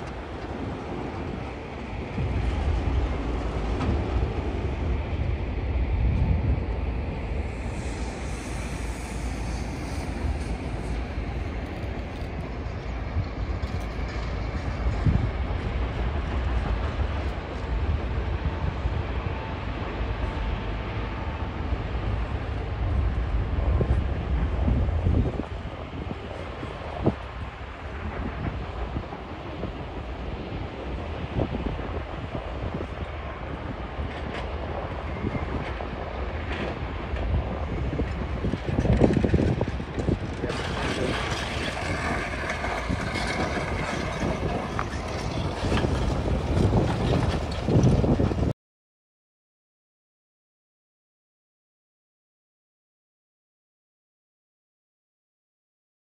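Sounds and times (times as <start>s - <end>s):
wind on microphone: 0.0s - 21.1s, 21.9s - 48.5s
distant machinery rumble: 0.0s - 48.5s.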